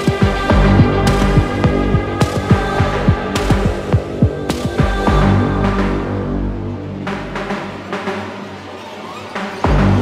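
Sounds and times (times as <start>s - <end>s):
background music: 0.0s - 10.0s
deep bass: 0.2s - 7.8s.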